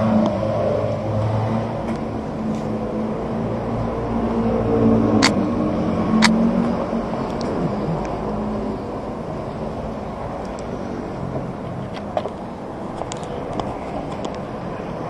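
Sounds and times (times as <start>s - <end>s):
vehicle engines rumbling: 0.0s - 15.0s.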